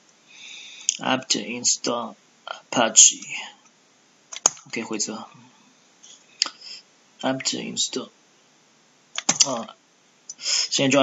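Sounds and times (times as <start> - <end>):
typing on computer keyboard: 4.3 - 4.7, 9.2 - 9.7.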